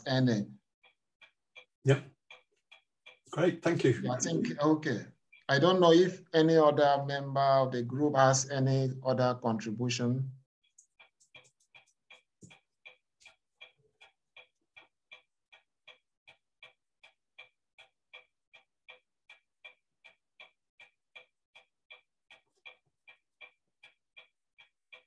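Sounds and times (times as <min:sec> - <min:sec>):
faint clock ticking: 0:00.0 - 0:25.0.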